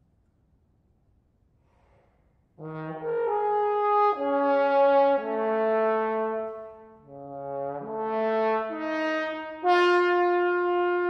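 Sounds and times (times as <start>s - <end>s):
solo trombone held notes: 2.6s - 11.0s.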